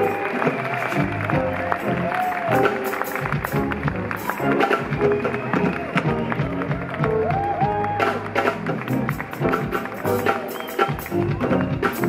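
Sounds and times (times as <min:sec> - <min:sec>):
drums steady beat: 0:00.0 - 0:12.0
live funk band playing: 0:00.0 - 0:12.0.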